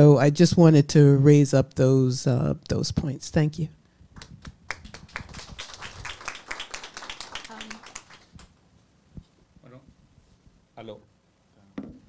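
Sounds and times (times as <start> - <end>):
small audience clapping: 4.2 - 8.6.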